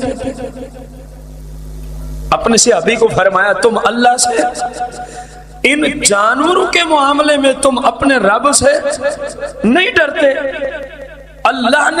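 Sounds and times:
steady low hum: 0.0 - 12.0
voice: 2.3 - 4.8, 5.7 - 10.5, 11.5 - 12.0.

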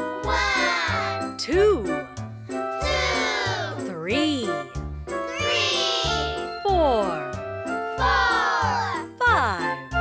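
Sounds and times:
cartoon music with bass beat: 0.0 - 10.0.

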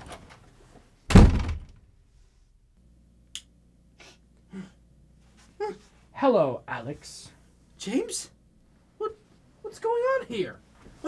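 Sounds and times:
heavy impact thunk: 1.1 - 1.8.

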